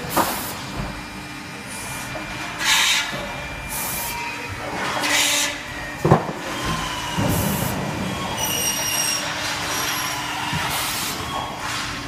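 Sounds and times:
processing machine running: 0.0 - 12.0.

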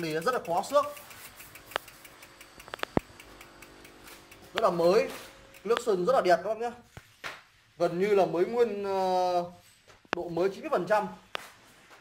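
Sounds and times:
sharp clicks of bike frame: 0.0 - 6.1
faint fast ticking: 0.0 - 6.2.

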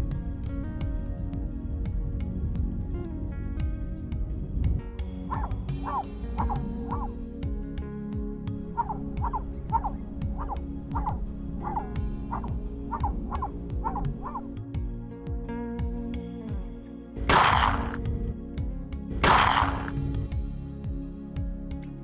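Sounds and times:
background music with low notes: 0.0 - 22.0
dog barking in high yaps: 5.3 - 7.1, 8.8 - 14.5.

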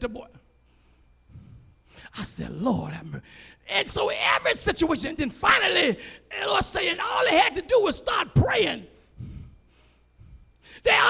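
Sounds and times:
breath into microphone: 0.7 - 2.0, 9.2 - 10.8
man talking: 2.1 - 8.9.

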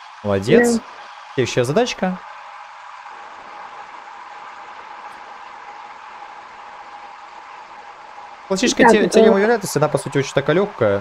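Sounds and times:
audio line hiss: 0.0 - 11.0
spoken word: 0.4 - 0.8, 8.7 - 9.5.

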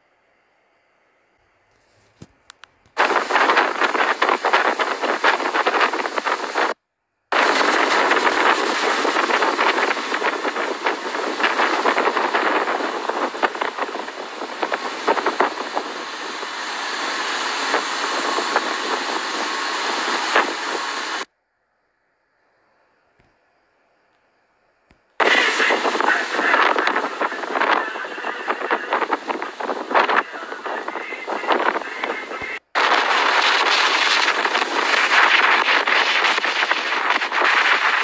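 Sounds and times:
wind buffeting microphone: 3.0 - 21.3, 25.2 - 38.0.

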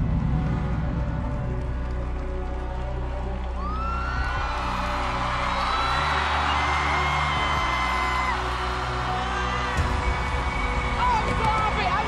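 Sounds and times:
audience cheering and whooping: 3.5 - 12.0.

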